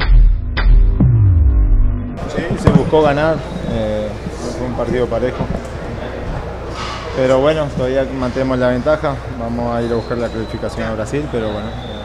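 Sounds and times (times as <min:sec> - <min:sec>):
deep bass tone sliding downward: 0:00.0 - 0:02.4
background noise: 0:02.2 - 0:12.0.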